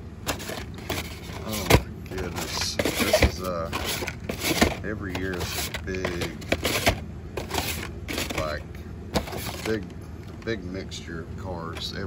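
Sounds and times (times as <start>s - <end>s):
blister packs clicking and tapping: 0.3s - 8.6s.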